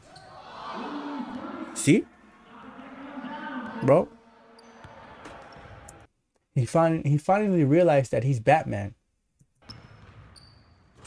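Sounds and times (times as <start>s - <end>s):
low hall background: 0.0s - 7.5s.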